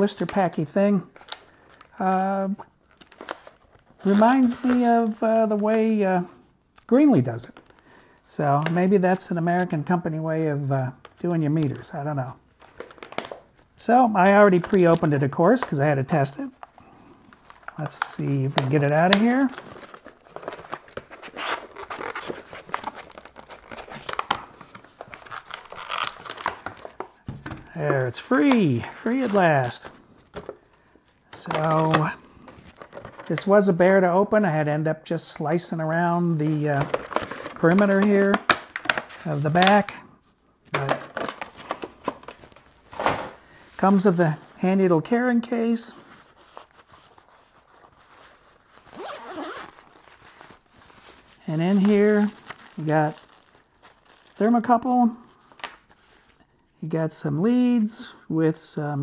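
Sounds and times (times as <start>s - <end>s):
plastic packaging crinkling: 2.8s - 5.2s, 12.5s - 33.6s, 36.4s - 39.9s, 40.7s - 44.6s, 45.9s - 56.4s
case handling rustles: 16.6s - 28.6s
zipper pulled open: 48.9s - 49.8s.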